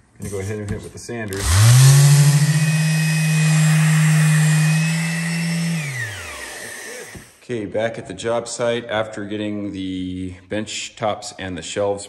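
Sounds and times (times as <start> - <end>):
electric sander running: 1.3 - 7.4.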